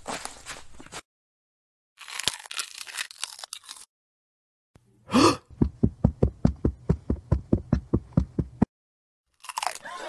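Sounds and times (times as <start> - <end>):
cookie crunching being bitten: 2.0 - 3.9, 9.4 - 9.9.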